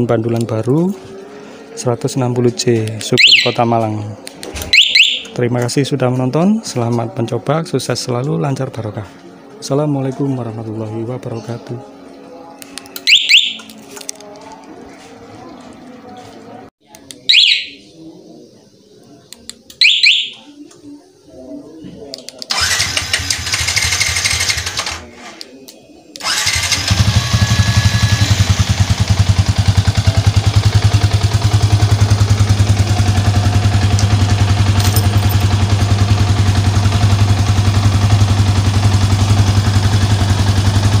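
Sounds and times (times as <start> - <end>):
motorcycle alarm chirps: 3.2 - 3.7, 4.7 - 5.4, 12.9 - 13.8, 17.2 - 17.9, 19.7 - 20.6, 26.3 - 39.5
motorcycle engine cranking: 22.4 - 25.1, 26.2 - 40.9
motorcycle engine idling: 26.4 - 41.0.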